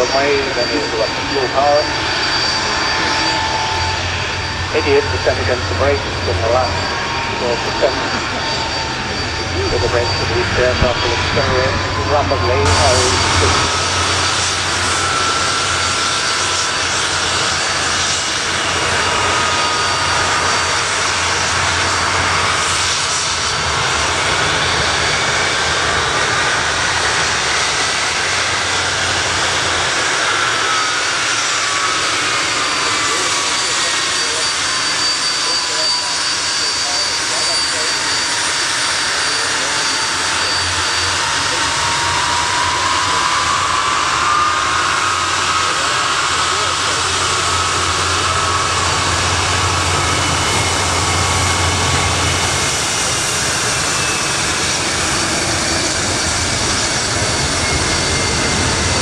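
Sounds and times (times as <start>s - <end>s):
jet engines roaring: 0.0s - 59.0s
turbine whine: 0.0s - 59.0s.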